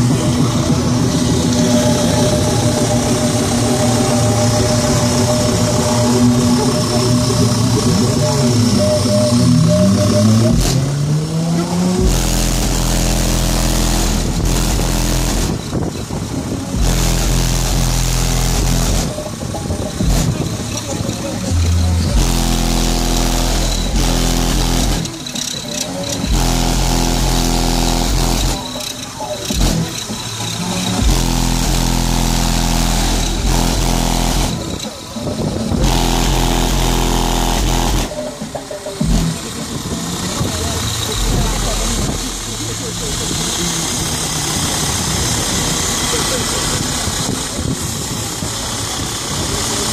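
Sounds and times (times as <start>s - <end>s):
deep bass music from subwoofers: 0.0s - 49.9s.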